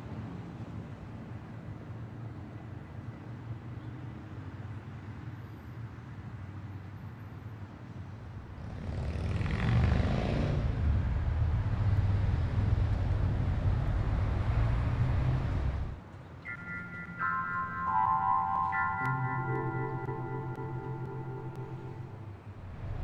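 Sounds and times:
soft bell-like music tones: 16.5 - 22.5.

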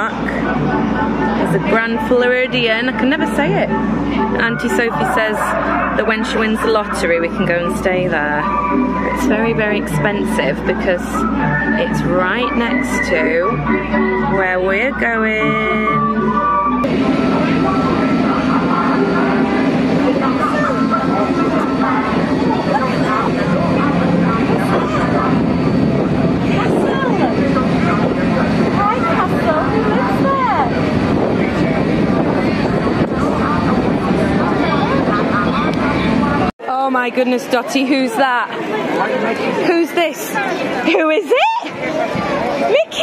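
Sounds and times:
boat engine running: 0.0 - 36.5
rushing noise: 0.0 - 36.5
faint voices: 0.0 - 43.0.

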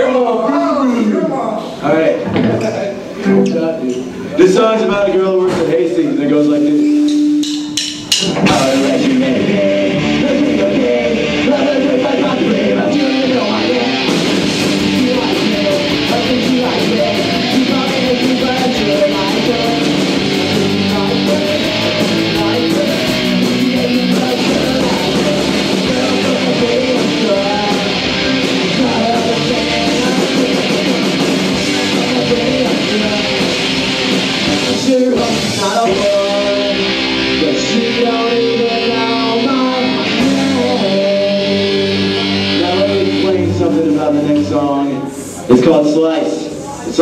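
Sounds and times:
cymbals: 6.8 - 9.2
punk rock band playing: 6.8 - 45.3.

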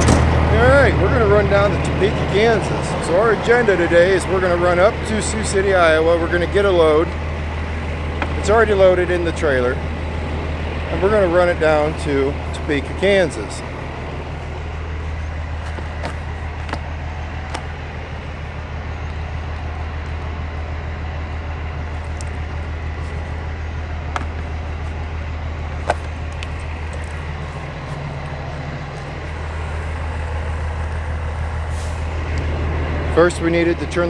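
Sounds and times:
low mechanical rumble: 0.0 - 34.0.

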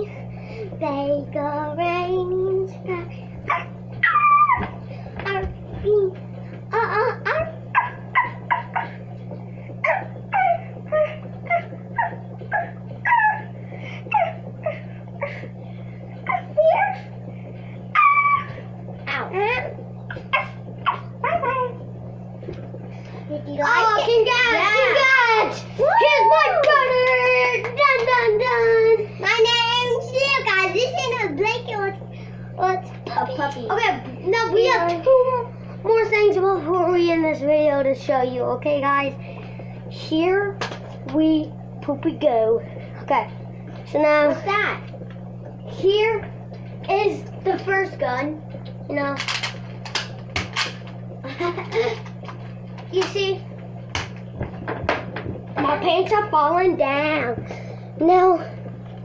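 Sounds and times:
low hum: 0.0 - 59.0
children vocalizing and giggling: 2.8 - 9.1, 9.8 - 15.6, 16.2 - 17.2, 17.9 - 21.8.

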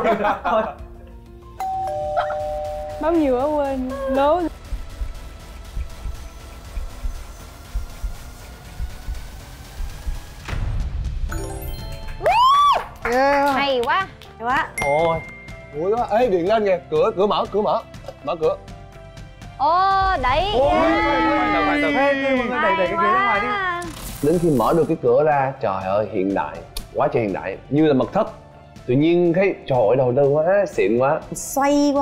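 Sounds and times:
two-note electronic chime: 1.6 - 3.3
excited group shouting: 20.4 - 23.6.

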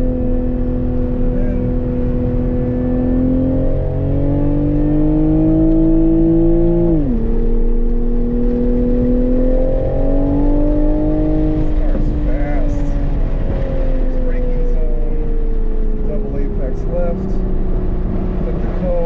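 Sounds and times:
car engine accelerating hard: 0.0 - 19.0.

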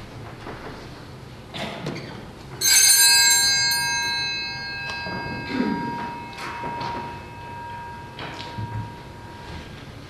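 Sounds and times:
small bell ringing: 2.6 - 9.9.

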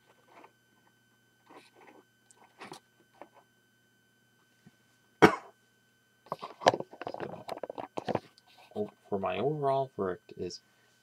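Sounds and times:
person coughing: 5.2 - 5.6.

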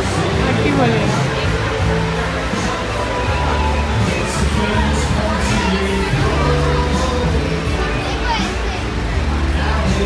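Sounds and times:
background music with deep bass: 0.0 - 10.0
children's voices: 0.0 - 10.0
many people talking: 0.0 - 10.0.

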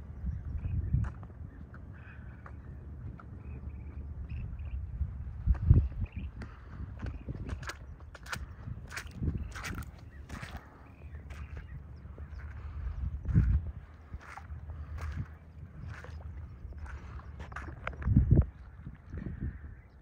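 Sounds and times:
wind on microphone: 0.0 - 20.0
footsteps on wet ground: 0.6 - 19.4.

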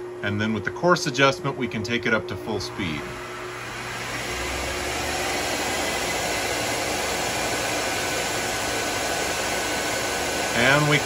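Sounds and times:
electric motor running: 2.5 - 11.0.

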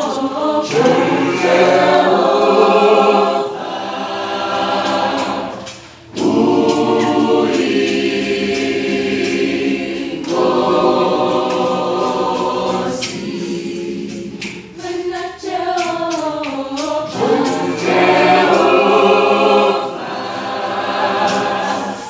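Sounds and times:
choir singing unaccompanied gospel: 0.0 - 22.0.

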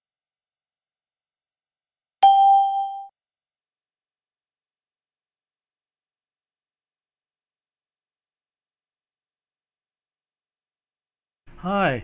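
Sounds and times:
bell-like ding chime: 2.2 - 3.1.

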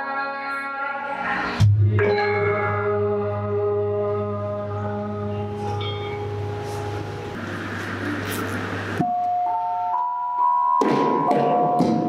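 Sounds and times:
gamelan sustained notes: 1.9 - 7.4
gamelan ensemble playing: 5.4 - 7.4.

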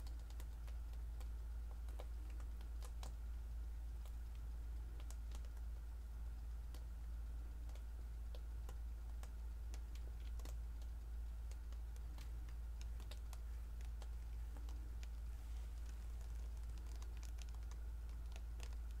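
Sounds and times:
faint clicks and ticks: 0.0 - 19.0
low hum: 0.0 - 19.0.

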